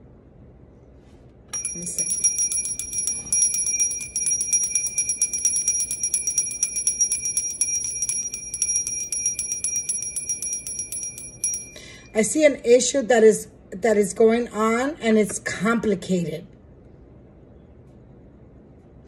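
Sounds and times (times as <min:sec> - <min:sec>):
hand bell ringing rapidly: 0:01.5 - 0:12.2.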